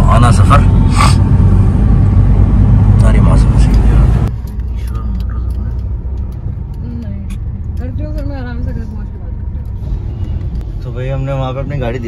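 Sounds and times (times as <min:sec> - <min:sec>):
car engine and tyres rumble: 0:00.0 - 0:12.0.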